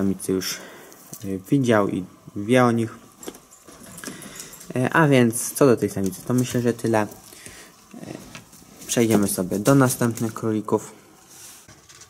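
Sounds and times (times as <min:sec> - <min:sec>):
man speaking: 0:00.0 - 0:03.0, 0:04.7 - 0:07.2, 0:08.0 - 0:11.0.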